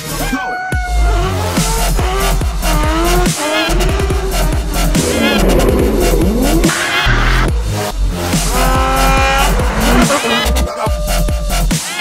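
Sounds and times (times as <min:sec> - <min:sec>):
car engine revving: 0:01.8 - 0:10.7
electronic music with pulsing bass: 0:03.9 - 0:07.6.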